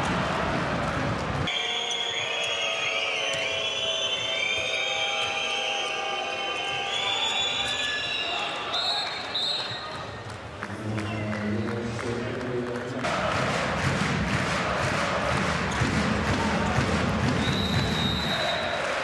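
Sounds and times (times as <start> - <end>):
loud crowd noise: 0.0 - 19.0.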